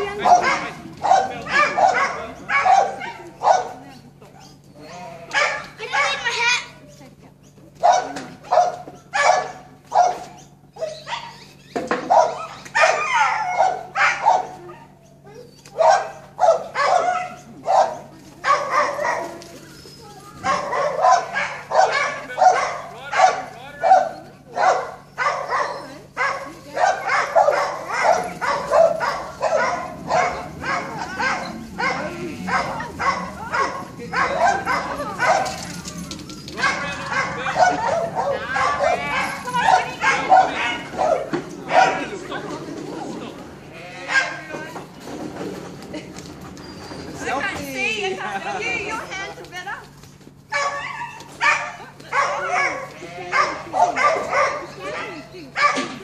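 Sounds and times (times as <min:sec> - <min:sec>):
dog barking sharply: 0:00.2 - 0:03.8, 0:05.3 - 0:06.4, 0:07.8 - 0:11.4, 0:12.0 - 0:14.6, 0:15.7 - 0:19.3, 0:20.4 - 0:35.6, 0:36.6 - 0:42.1, 0:44.1 - 0:44.5, 0:50.5 - 0:56.0.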